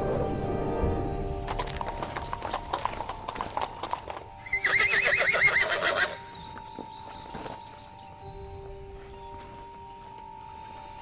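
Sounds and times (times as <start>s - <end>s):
music: 0.0s - 11.0s
horse hooves clip-clopping: 1.5s - 11.0s
horse whinny: 4.4s - 6.2s.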